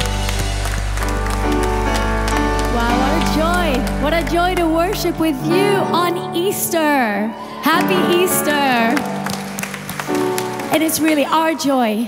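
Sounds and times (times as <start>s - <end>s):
congregation applause: 0.0s - 5.2s, 7.4s - 11.6s
keyboard sustained chords: 0.0s - 11.2s
woman's voice: 2.7s - 9.0s, 10.7s - 12.0s.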